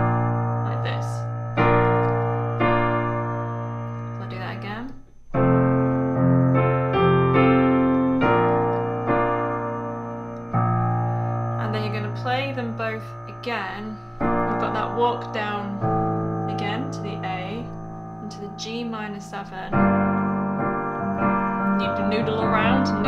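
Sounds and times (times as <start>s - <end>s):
piano chords: 0.0s - 23.0s.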